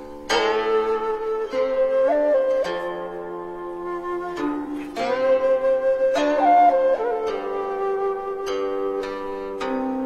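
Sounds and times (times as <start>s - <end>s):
flute playing slow melody: 0.0s - 10.0s.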